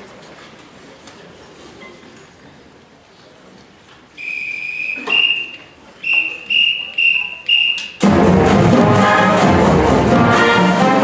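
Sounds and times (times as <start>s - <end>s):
whistle blasts: 4.2s - 8.0s
brass and saxophone pep band: 4.2s - 11.0s.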